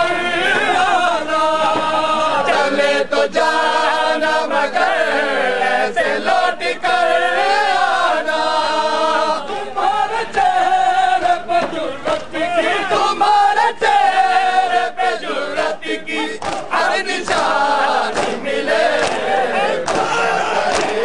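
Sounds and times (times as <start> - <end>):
men chanting mournful lament: 0.0 - 21.0.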